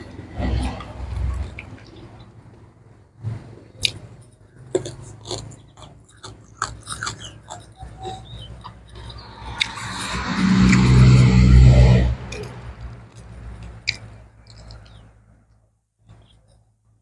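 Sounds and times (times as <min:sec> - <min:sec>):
chewing crunchy vegetables: 0:03.7 - 0:09.9, 0:12.3 - 0:16.6.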